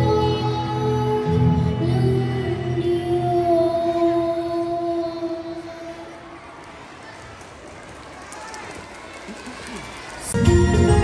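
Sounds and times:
faint chatter of voices: 5.5s - 10.4s.

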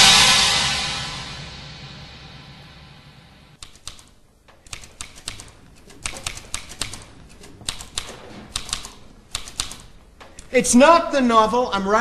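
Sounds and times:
typewriter keys striking: 3.6s - 10.6s.

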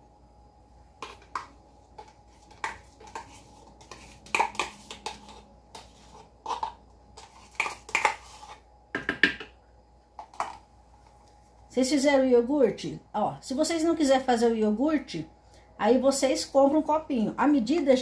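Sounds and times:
spoon scraping plastic cup: 1.0s - 8.7s.

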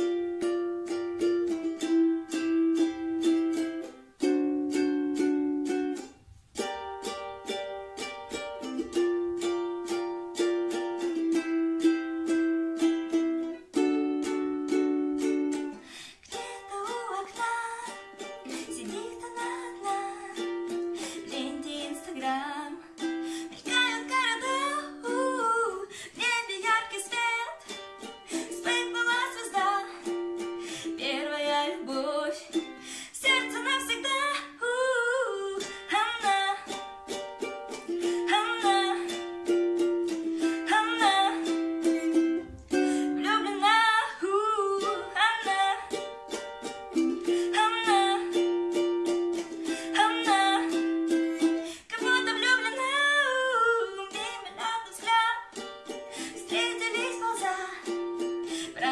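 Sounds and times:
girl singing: 0.0s - 58.9s
ukulele strumming: 0.0s - 58.9s.

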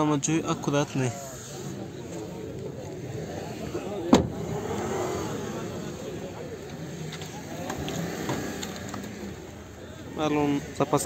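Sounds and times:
distant voices: 0.0s - 11.0s
vehicle noise: 0.0s - 11.0s.

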